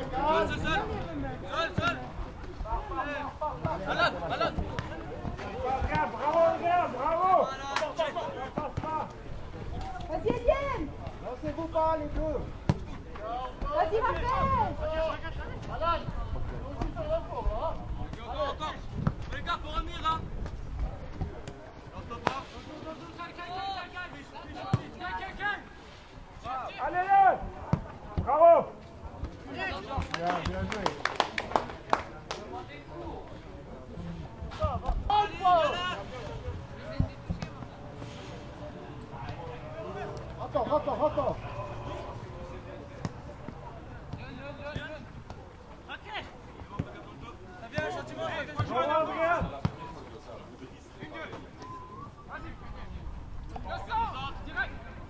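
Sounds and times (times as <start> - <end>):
players shouting: 35.0 - 36.8, 39.1 - 45.1.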